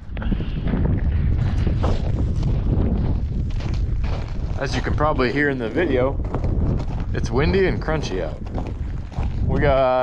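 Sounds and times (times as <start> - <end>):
strong wind buffeting microphone: 0.0 - 10.0
footsteps crunching on icy snow: 1.3 - 10.0.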